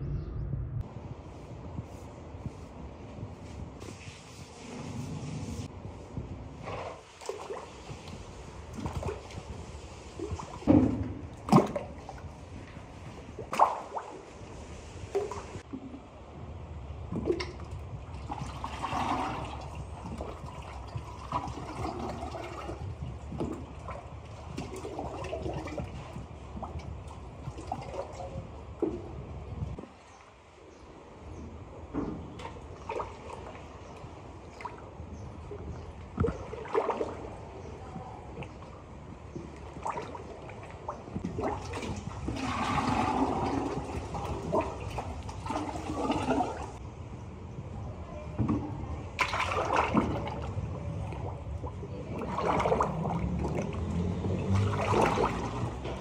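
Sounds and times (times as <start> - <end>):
steady low hum: 0.0 - 3.8
liquid clay pouring: 17.0 - 29.1, 39.4 - 46.8.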